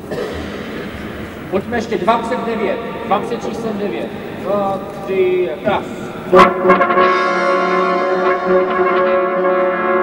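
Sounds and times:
brass ensemble holding a chord: 0:06.3 - 0:10.0.

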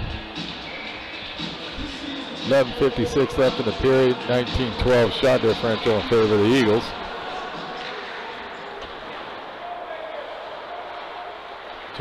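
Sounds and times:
murmur of voices: 0:00.8 - 0:12.0
hockey sticks and skates on ice: 0:07.4 - 0:09.5.

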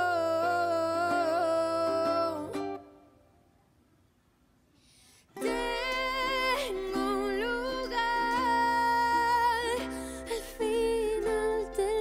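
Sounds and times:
acoustic guitar: 0:05.4 - 0:12.0.

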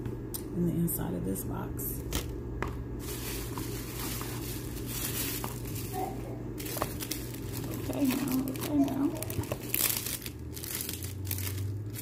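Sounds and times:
tissue paper rustling: 0:03.0 - 0:12.0.

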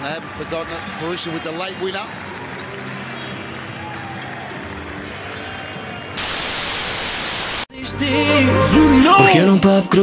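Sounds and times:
stadium crowd noise: 0:00.0 - 0:06.2
tv static hiss: 0:06.2 - 0:07.7.

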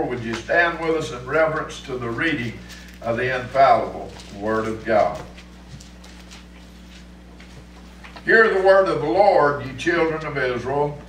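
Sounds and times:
wooden pews creaking and knocking: 0:00.0 - 0:06.6
people shuffling: 0:00.0 - 0:09.2
steady low hum: 0:00.0 - 0:11.0.

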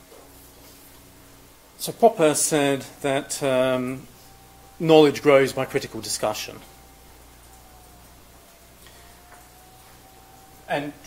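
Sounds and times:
faint steady whine: 0:00.0 - 0:11.0
low hum: 0:00.0 - 0:11.0.

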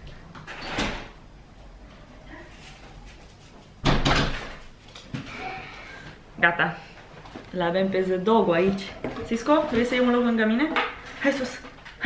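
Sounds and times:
door slamming shut: 0:00.5 - 0:01.2, 0:03.8 - 0:04.6.

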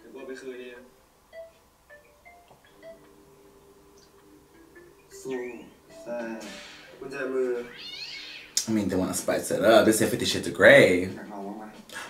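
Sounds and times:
television dialogue: 0:00.0 - 0:12.0.

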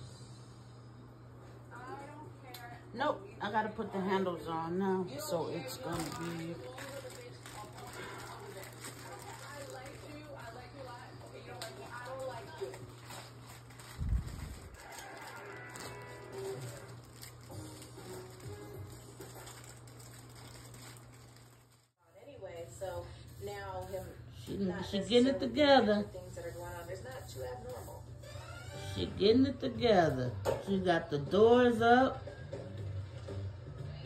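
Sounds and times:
steady low hum: 0:00.0 - 0:14.8
television music: 0:00.0 - 0:34.0
television speech: 0:01.4 - 0:19.6, 0:22.0 - 0:32.6.

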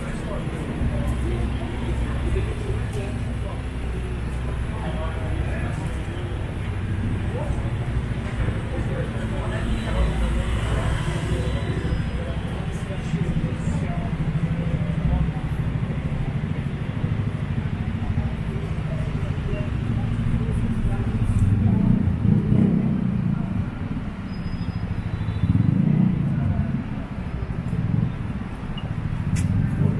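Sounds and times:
passers-by voices: 0:00.0 - 0:29.9
traffic engine rumble: 0:00.0 - 0:29.9.

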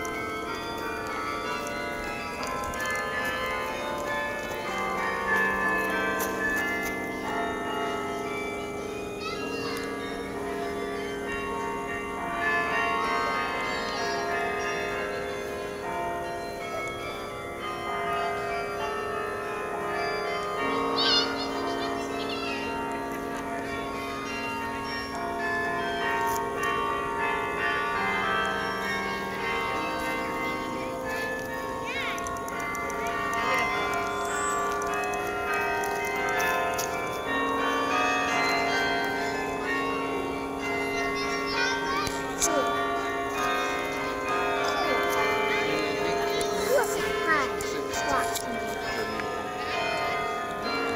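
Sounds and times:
carillon bells playing melody: 0:00.0 - 0:50.9.

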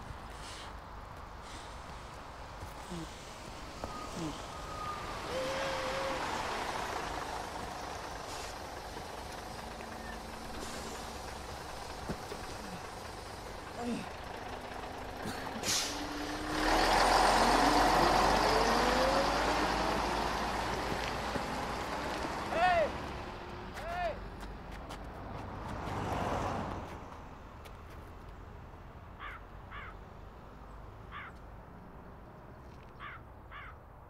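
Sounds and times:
bus engine accelerating: 0:00.0 - 0:28.9
air brake hiss: 0:15.6 - 0:16.1
crow cawing: 0:29.2 - 0:30.0, 0:31.1 - 0:31.4, 0:33.0 - 0:33.8.

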